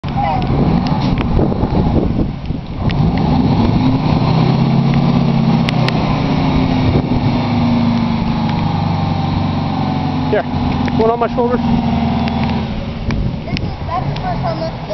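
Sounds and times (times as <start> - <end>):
fire truck engine running: 0.1 - 14.9.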